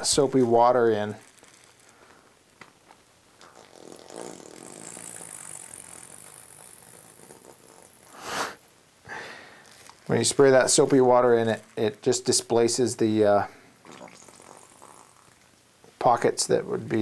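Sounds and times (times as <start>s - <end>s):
wet slurry squelching: 0.0s - 2.4s
plastic bag crinkling: 1.0s - 3.0s, 9.5s - 11.0s.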